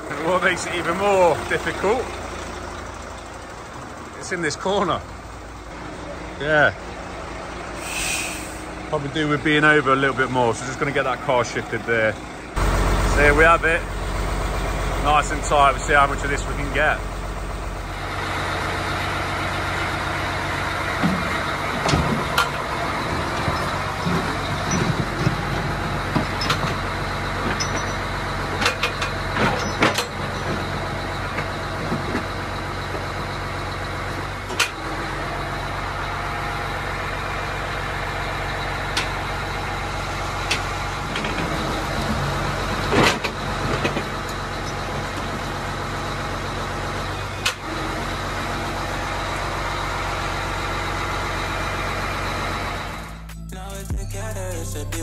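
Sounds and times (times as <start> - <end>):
diesel engine running: 0.0 - 55.0
music: 53.1 - 55.0.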